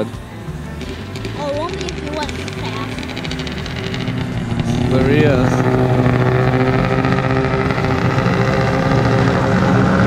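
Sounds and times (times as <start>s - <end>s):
snowmobile engine hum: 0.0s - 10.0s.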